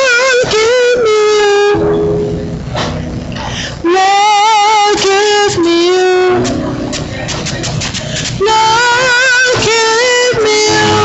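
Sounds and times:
gospel worship music: 0.0s - 11.0s
woman singing long wavering note: 3.8s - 6.4s.

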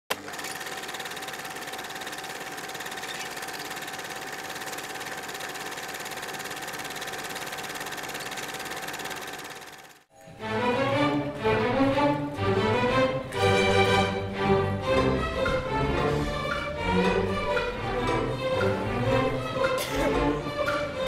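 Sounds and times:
film projector clattering: 0.1s - 10.1s.

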